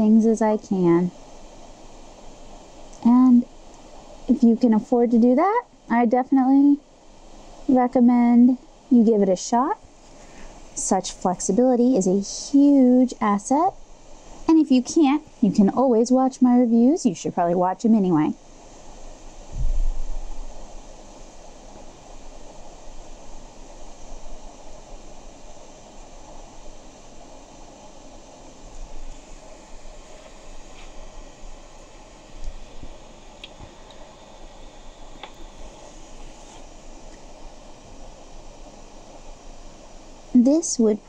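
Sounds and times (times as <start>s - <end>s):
steady background hiss: 0.0s - 41.0s
low bumps: 19.5s - 20.3s.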